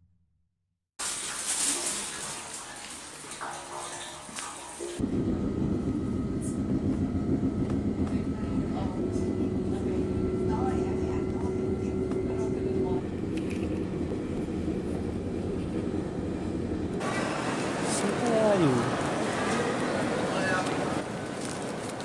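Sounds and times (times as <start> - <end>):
hissy outdoor ambience: 1.0 - 22.0
train rumble inside carriage: 4.9 - 22.0
steady hum: 5.0 - 21.0.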